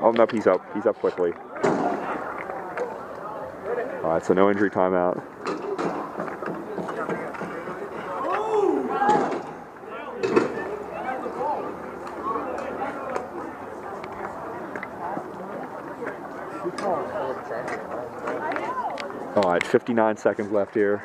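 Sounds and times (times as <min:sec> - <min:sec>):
people talking: 0:00.0 - 0:21.0.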